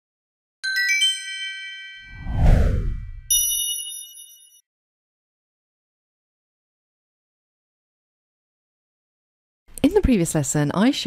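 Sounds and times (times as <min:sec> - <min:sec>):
cascade of bright chime notes: 0:00.6 - 0:02.2, 0:03.3 - 0:04.6
deep downward whoosh: 0:02.1 - 0:03.3
bright ding chord: 0:03.3 - 0:04.6.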